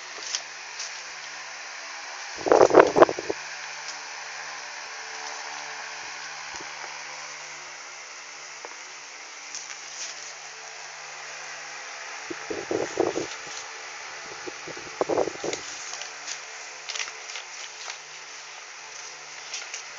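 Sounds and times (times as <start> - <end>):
steady mechanical hum: 0.0 - 19.9.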